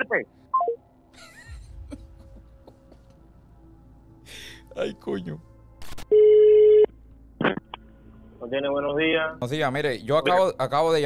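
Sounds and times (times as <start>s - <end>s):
telephone line beep: 6.1s - 6.9s.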